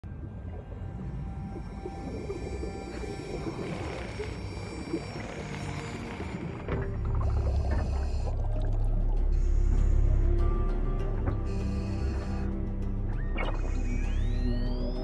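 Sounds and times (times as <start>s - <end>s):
film score held tones: 0.0s - 15.0s
murky underwater sound effects: 0.0s - 15.0s.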